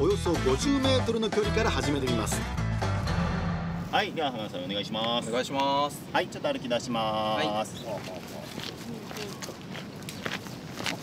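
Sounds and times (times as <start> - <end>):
jogging footsteps on asphalt: 8.0 - 11.0.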